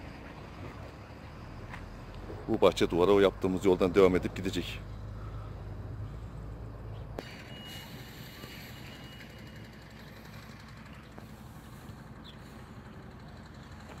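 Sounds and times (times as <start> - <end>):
faint low engine rumble: 0.0 - 14.0.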